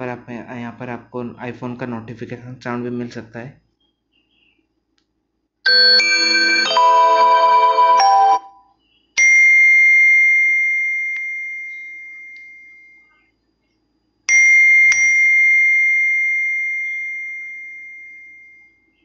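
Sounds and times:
bell-like notification chime: 5.7s - 8.6s.

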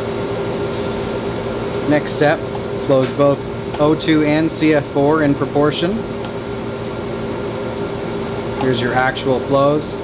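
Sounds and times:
machinery hum and hiss: 0.0s - 10.0s.

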